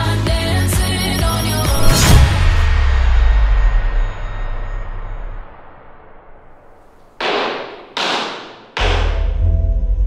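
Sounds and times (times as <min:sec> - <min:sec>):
wooden gavel striking block: 0:07.2 - 0:09.3
deep droning music: 0:08.8 - 0:10.0.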